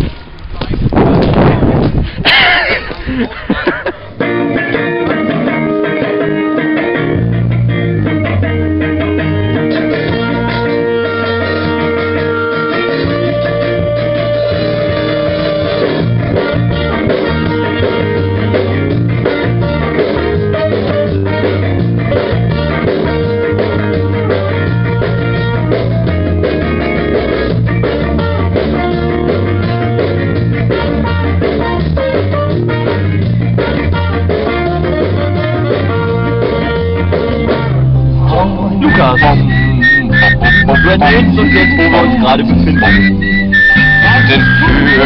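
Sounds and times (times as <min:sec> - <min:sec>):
bass guitar: 0:00.0 - 0:45.0
ska-punk band music: 0:01.5 - 0:45.0.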